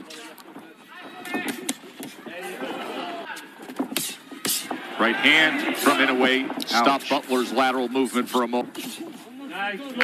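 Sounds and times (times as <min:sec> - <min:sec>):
crowd shouting: 0:01.0 - 0:07.5.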